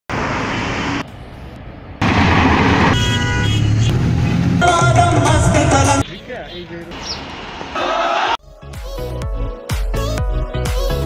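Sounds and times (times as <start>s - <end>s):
vehicle engine rumbling: 0.1s - 7.8s
car horn: 2.8s - 6.6s.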